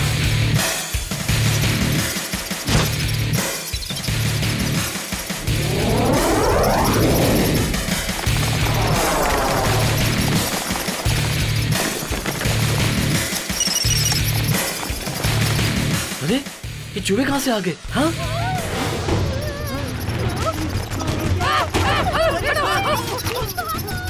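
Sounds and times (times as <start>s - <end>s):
long swooping sweeps: 5.2s - 11.1s.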